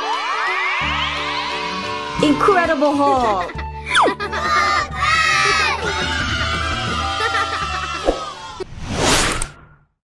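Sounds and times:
children cheering: 0:00.0 - 0:08.6
falling swoop: 0:08.0 - 0:09.8.

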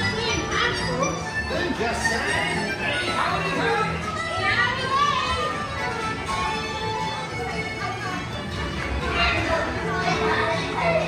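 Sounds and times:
carousel music: 0:00.0 - 0:11.0
children's voices and chatter: 0:00.0 - 0:11.0.

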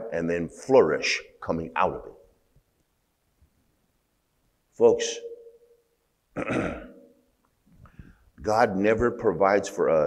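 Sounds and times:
man clearing his throat: 0:06.4 - 0:07.1.

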